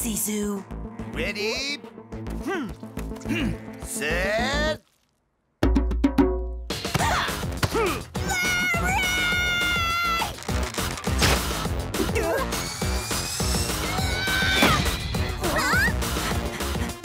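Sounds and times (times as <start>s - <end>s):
background music: 0.0s - 5.0s, 5.6s - 17.0s.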